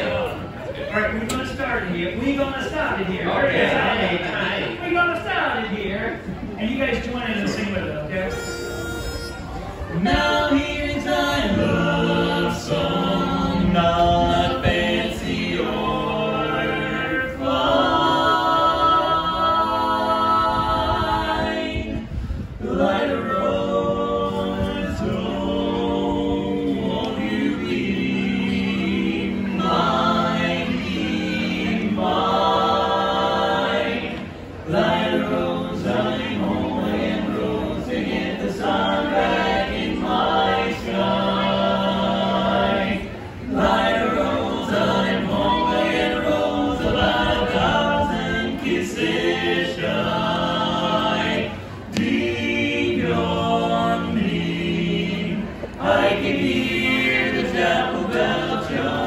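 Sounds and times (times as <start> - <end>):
men singing a cappella harmony: 9.9 - 59.0.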